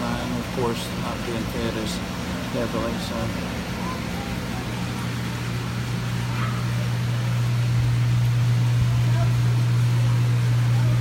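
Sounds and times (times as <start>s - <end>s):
aquarium pumps humming: 0.0s - 11.0s
faint voices: 0.3s - 7.5s.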